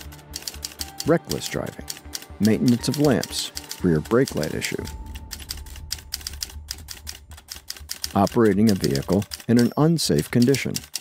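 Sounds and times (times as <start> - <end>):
typewriter key clacks: 7.4 - 11.0.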